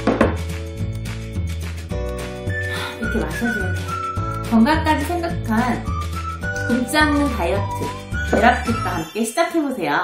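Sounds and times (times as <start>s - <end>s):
ceramic mug set down on table: 0.0s - 0.4s
background music: 0.0s - 10.0s.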